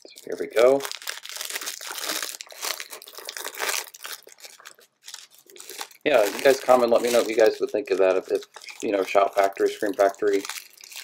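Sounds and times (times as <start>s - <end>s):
plastic shrink-wrap crinkling: 0.0s - 11.0s.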